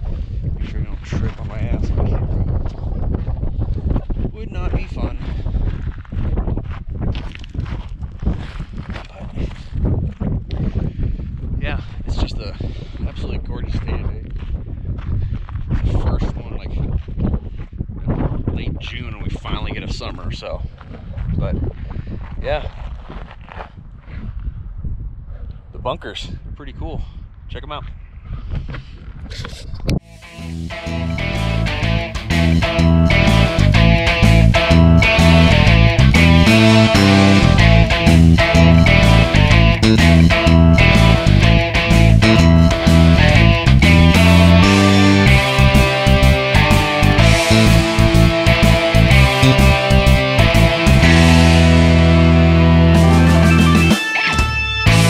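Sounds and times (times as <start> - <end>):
footsteps on dirt track: 0.0 - 18.5, 20.1 - 24.6
wind buffeting microphone: 0.0 - 30.1
background music: 30.1 - 55.0.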